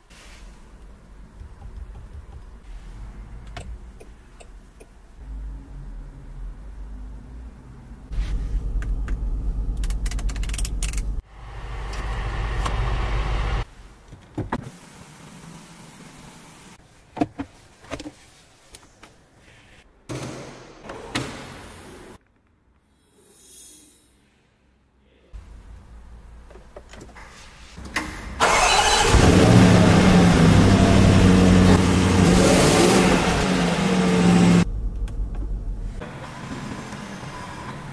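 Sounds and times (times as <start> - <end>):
car engine starting and idling: 0.8 - 13.7, 27.9 - 37.9
engine cranking: 28.4 - 29.8.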